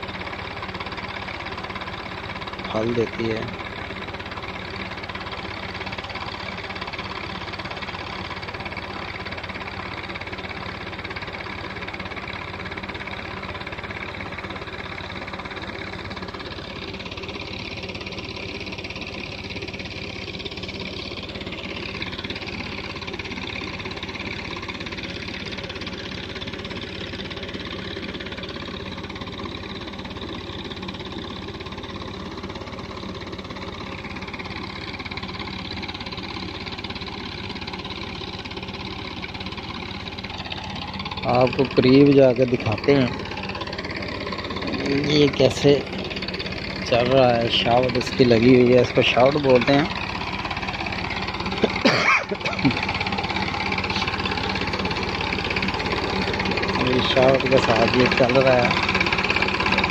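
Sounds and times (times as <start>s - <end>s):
tractor diesel engine running: 0.0s - 59.9s.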